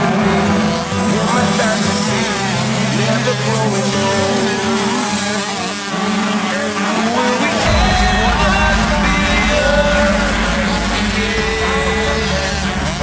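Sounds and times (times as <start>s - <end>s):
motocross bikes revving: 0.0s - 13.0s
deep low sound: 7.6s - 13.0s.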